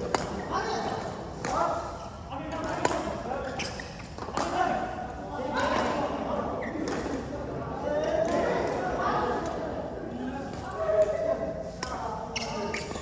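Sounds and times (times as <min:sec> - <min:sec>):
rackets striking shuttlecocks: 0:00.0 - 0:01.6, 0:02.5 - 0:04.6
players' voices echoing: 0:00.0 - 0:13.0.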